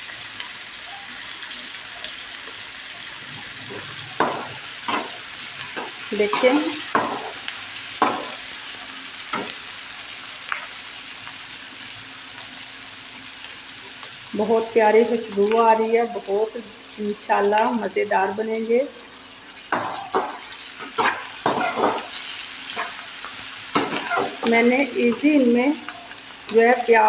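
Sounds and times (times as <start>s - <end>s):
onions sizzling in hot oil: 0.0s - 27.0s
spatula scraping and clanking on wok: 3.6s - 8.5s, 19.7s - 24.5s.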